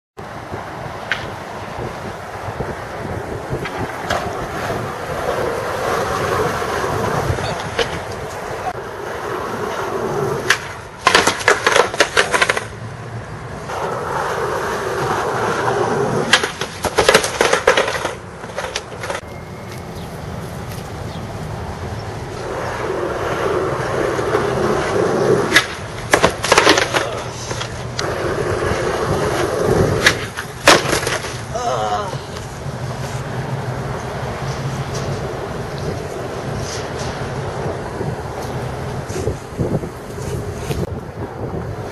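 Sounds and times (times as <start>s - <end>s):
skateboard wheels rolling on asphalt: 0.2s - 41.9s
skateboards clattering on pavement: 0.9s - 12.8s, 13.6s - 19.3s, 22.3s - 41.9s.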